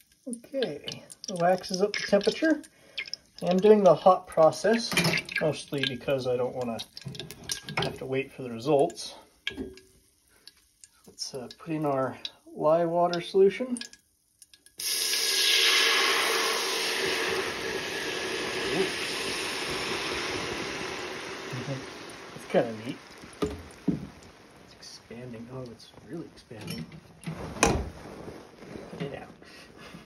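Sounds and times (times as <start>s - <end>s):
molten wax bubbling in a pot: 0.0s - 30.0s.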